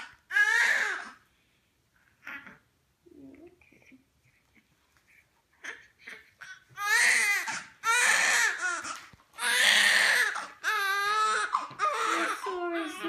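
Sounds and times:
newborn baby crying: 0.0s - 1.2s, 5.6s - 13.0s.

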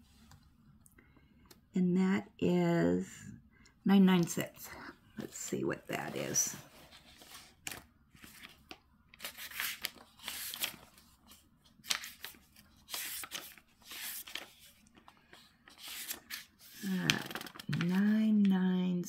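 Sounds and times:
paper rustling and crinkling: 5.9s - 18.5s.

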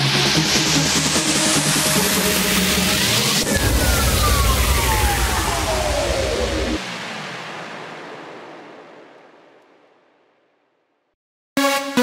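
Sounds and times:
noise wash: 0.0s - 11.1s
downward sweeping synth tone: 2.2s - 9.2s.

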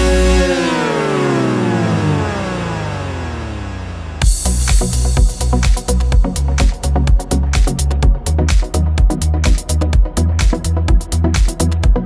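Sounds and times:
synthesizer sweep gliding down: 0.0s - 12.0s.

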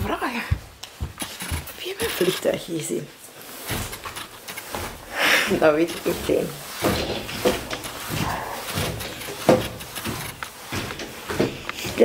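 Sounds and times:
coat fabric rustling on microphone: 0.0s - 12.0s.

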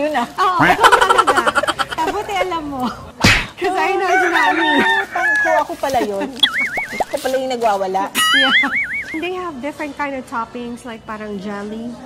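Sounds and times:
women laughing and chattering: 0.0s - 10.1s.

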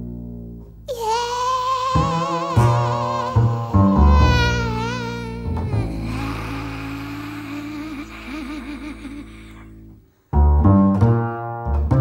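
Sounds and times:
bowed double bass: 0.0s - 12.0s
person vocalizing: 0.9s - 9.8s.

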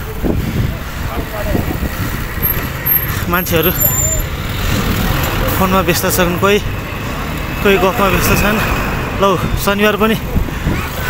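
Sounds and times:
motorcycle engines rumbling: 0.0s - 11.0s.

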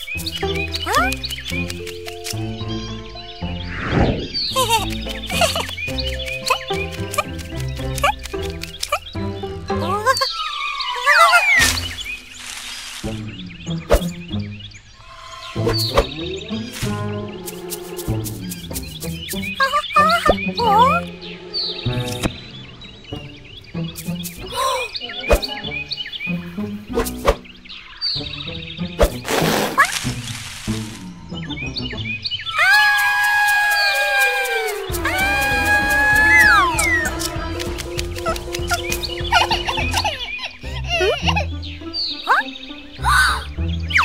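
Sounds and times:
light background music: 0.0s - 44.0s.

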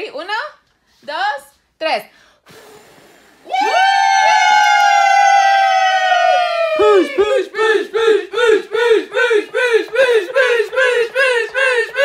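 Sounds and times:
people cheering: 3.5s - 12.0s
rhythmic chant of shouts: 7.0s - 12.0s.

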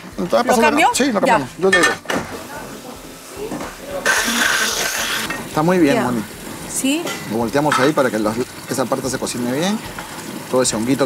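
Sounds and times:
frying pan knocking on stove: 6.9s - 8.9s.

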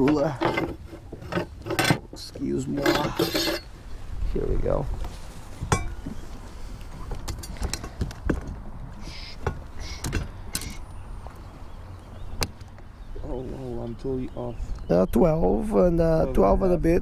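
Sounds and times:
man speaking: 13.2s - 17.0s.

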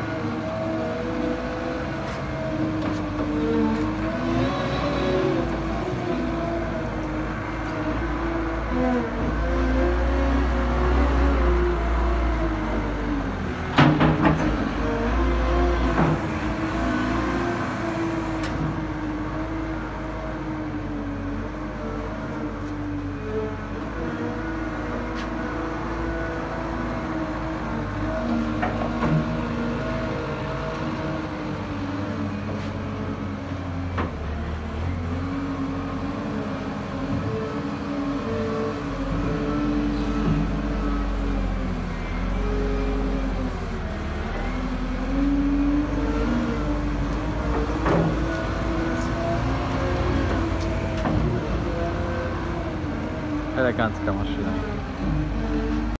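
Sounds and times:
wheel loader diesel engine running: 0.0s - 56.0s.

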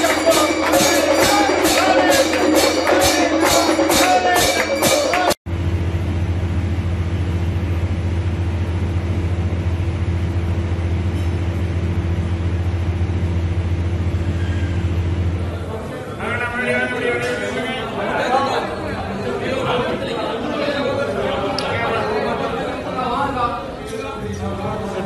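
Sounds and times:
music with jingling percussion: 0.0s - 5.4s
steady low hum with tones: 5.5s - 25.0s.

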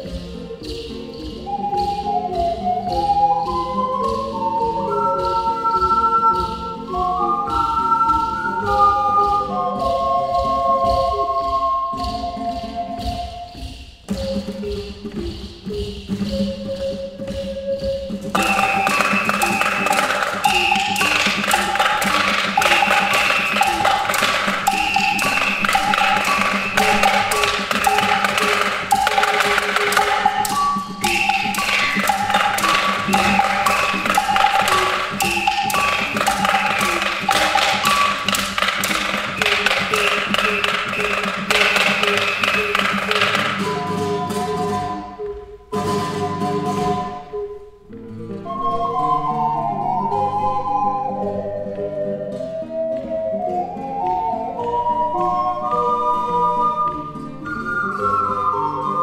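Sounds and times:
fast tapping percussion: 0.0s - 47.3s
acoustic guitar: 0.0s - 59.0s
ocarina ensemble: 0.0s - 59.0s.

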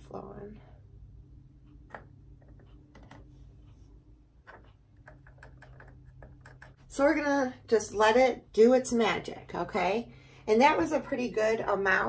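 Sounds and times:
low hum: 0.0s - 12.0s
fingers tapping plastic: 4.4s - 6.8s.

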